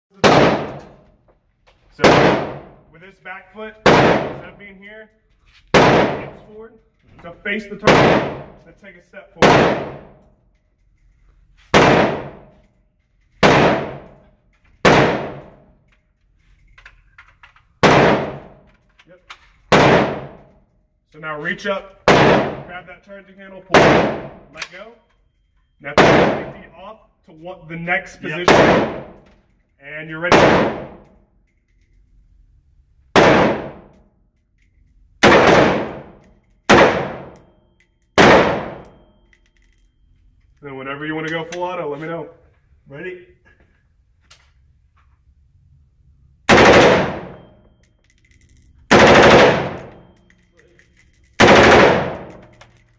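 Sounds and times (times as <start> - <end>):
gunshot echo off walls: 0.1 - 1.0, 2.0 - 2.8, 3.8 - 4.5, 5.7 - 6.4, 7.8 - 8.6, 9.4 - 10.2, 11.7 - 12.5, 13.4 - 14.1, 14.8 - 15.6, 17.8 - 18.6, 19.7 - 20.4, 22.0 - 22.7, 23.7 - 24.5, 26.0 - 26.6, 28.4 - 29.2, 30.2 - 31.0, 33.2 - 33.9, 35.2 - 37.4, 38.2 - 39.0, 46.5 - 47.4
rifle shots: 0.1 - 1.0, 2.0 - 2.8, 3.8 - 4.5, 5.7 - 6.4, 7.8 - 8.6, 9.4 - 10.1, 11.7 - 12.4, 13.4 - 14.1, 14.8 - 15.5, 17.8 - 18.5, 19.7 - 20.4, 22.0 - 22.7, 23.7 - 24.4, 26.0 - 26.5, 28.4 - 29.2, 30.3 - 31.0, 33.2 - 33.9, 35.2 - 37.4, 38.1 - 38.9, 46.5 - 47.4, 48.9 - 50.0, 51.4 - 52.6.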